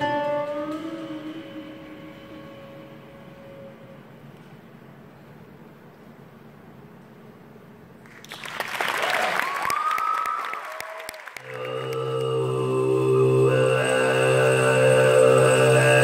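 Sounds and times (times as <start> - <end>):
throat singing drone: 0.0 - 4.4, 11.4 - 16.0
audience applause: 8.1 - 12.1
audience whistling: 9.2 - 11.4.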